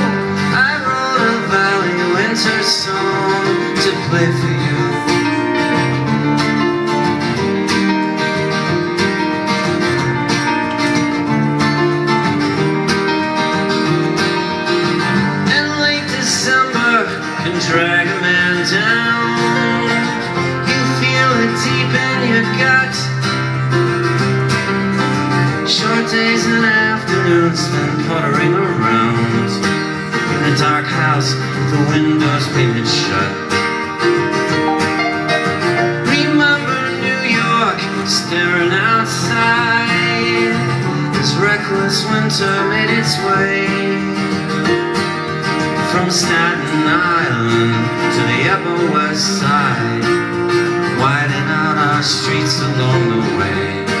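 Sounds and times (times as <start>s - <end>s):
man singing: 0.0s - 6.2s, 15.2s - 23.8s, 25.0s - 33.6s, 35.3s - 44.9s, 45.5s - 54.0s
acoustic guitar strumming: 0.0s - 54.0s
piano: 0.0s - 54.0s.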